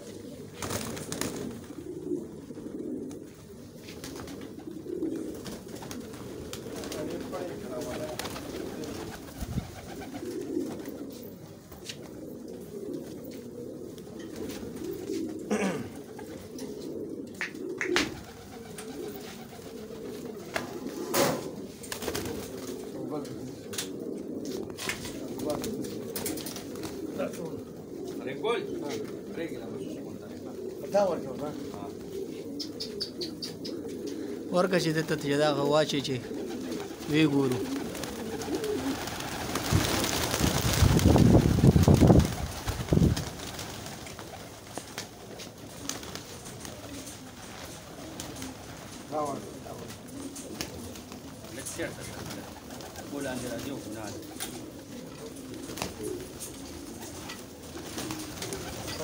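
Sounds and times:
pigeons cooing: 0.0s - 59.0s.

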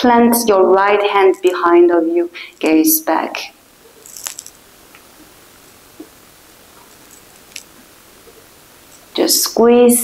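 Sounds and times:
soft rustle: 3.7s - 9.4s
faint ticks: 6.8s - 9.2s.

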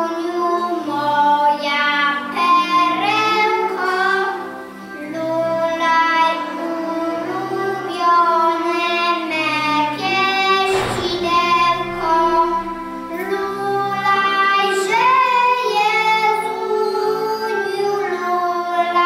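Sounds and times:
children singing together: 0.0s - 19.0s.

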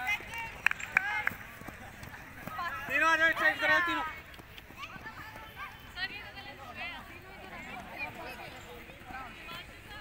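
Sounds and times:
faint voices: 0.0s - 10.0s
running footsteps on grass: 0.0s - 10.0s.

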